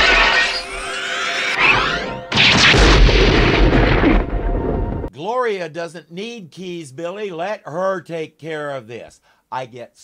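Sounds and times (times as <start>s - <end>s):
explosion boom with deep rumble: 2.3s - 5.1s.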